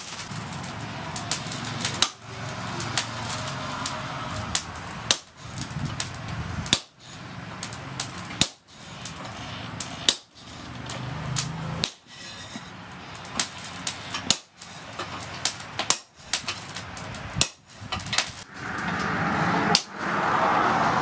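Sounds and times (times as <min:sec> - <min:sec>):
sledgehammer striking hot metal: 0:00.0 - 0:20.1.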